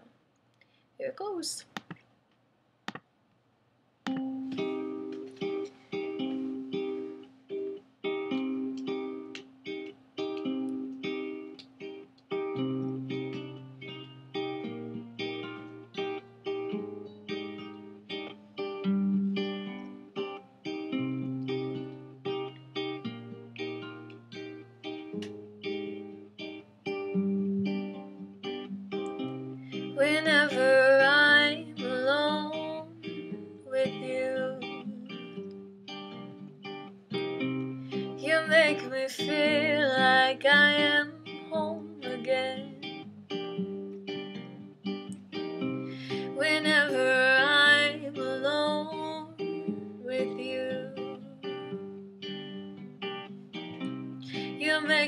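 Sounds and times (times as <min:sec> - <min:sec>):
acoustic guitar picking: 0:04.1 - 0:55.0
woman singing: 0:29.9 - 0:35.4, 0:38.2 - 0:42.9, 0:46.0 - 0:51.5, 0:54.2 - 0:55.0.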